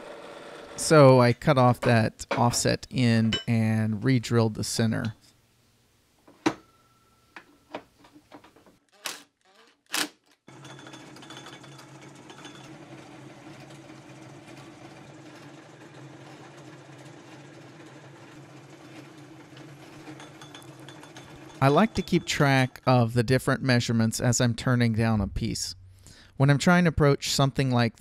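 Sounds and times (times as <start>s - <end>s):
metal lathe turning steel rod: 10.5s - 22.9s.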